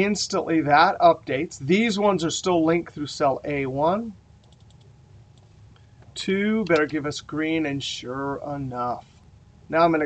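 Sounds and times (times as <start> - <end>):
computer keyboard clicks: 4.4 - 5.5.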